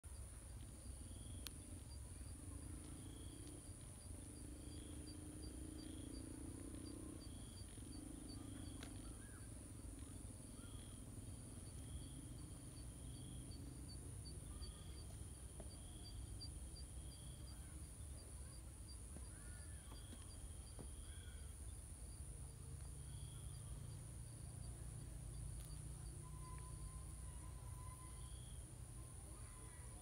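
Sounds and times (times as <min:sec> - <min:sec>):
low distant hum: 0:00.0 - 0:30.0
insects chirping: 0:00.1 - 0:30.0
steady high whine: 0:00.1 - 0:30.0.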